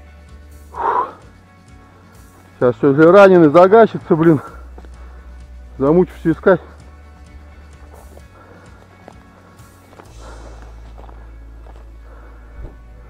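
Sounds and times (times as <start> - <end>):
music: 0.0 - 13.0
footsteps through dry grass: 1.7 - 13.0.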